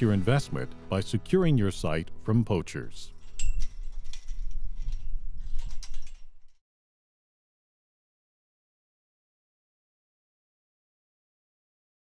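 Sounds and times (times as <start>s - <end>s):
chain-link gate clinking: 2.5s - 6.6s.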